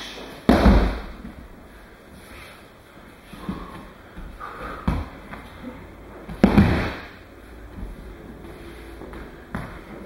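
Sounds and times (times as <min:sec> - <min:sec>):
body slapping on mat: 0:00.5 - 0:01.4, 0:06.3 - 0:07.1
body rolling across mat: 0:00.5 - 0:10.0.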